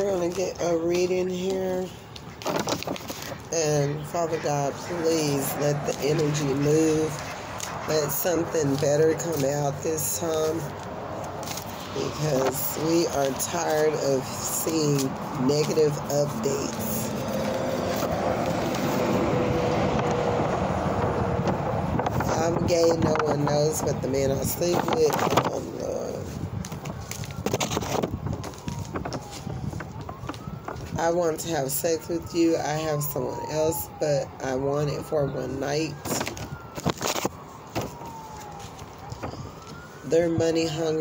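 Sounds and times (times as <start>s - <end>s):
distant siren wailing: 0.0s - 41.0s
playing cards rustling: 2.1s - 3.5s, 10.4s - 13.7s, 26.6s - 30.9s, 36.0s - 39.9s
vehicle passing by: 3.1s - 27.4s.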